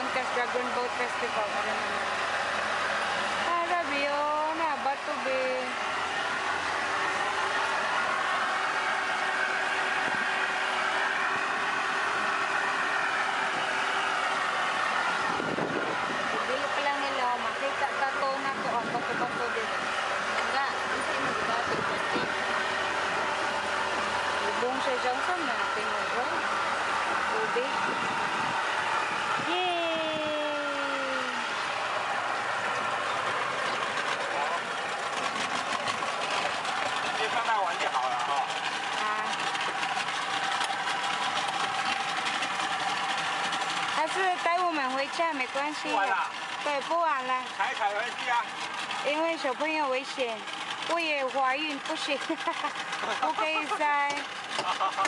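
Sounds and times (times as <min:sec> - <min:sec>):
small outboard motor running: 0:00.0 - 0:55.0
water wash: 0:00.0 - 0:55.0.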